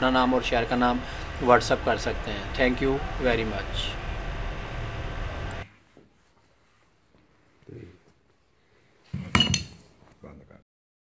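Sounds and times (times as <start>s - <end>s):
background hiss and hum: 0.0s - 10.6s.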